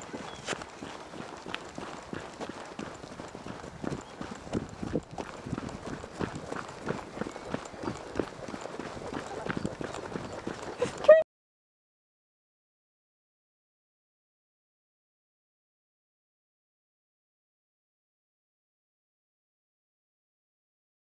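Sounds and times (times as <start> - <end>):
horse hooves trotting on dirt: 0.0 - 11.2.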